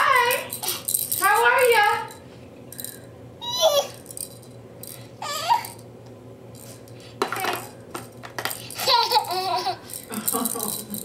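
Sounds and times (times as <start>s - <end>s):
toddler laughing: 3.4s - 4.0s, 8.7s - 9.9s
toddler vocal sounds: 3.4s - 4.0s, 5.2s - 5.8s
plastic toy pieces clattering: 7.2s - 11.0s.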